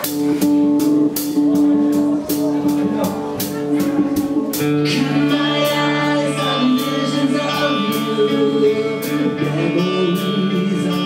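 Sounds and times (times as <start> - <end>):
low guitar chord: 0.0 - 11.0
sustained electric guitar notes: 0.0 - 11.0.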